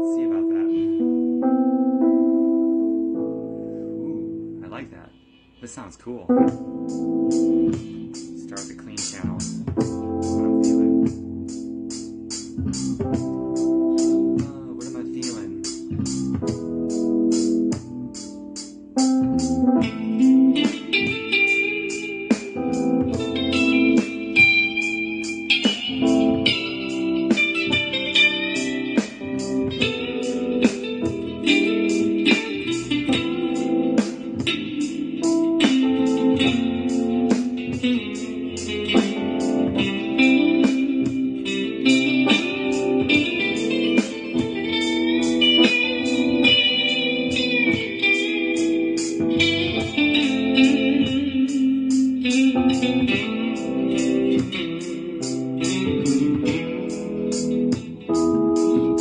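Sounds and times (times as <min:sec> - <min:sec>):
electric guitar lead: 0:00.0 - 0:05.2, 0:06.3 - 0:59.0
steady drum beat: 0:05.5 - 0:20.0, 0:20.6 - 0:59.0.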